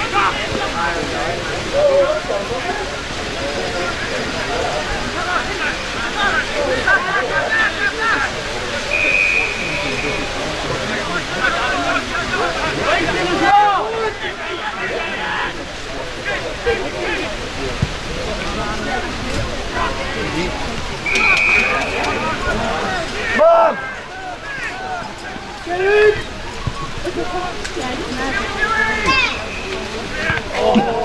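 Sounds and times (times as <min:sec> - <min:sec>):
players calling out: 0:00.0 - 0:31.0
umpire's whistle blast: 0:08.9 - 0:10.4, 0:21.0 - 0:22.4.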